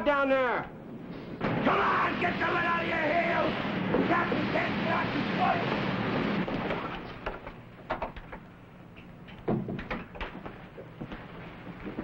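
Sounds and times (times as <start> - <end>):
engine-room machinery din: 1.4 - 7.6.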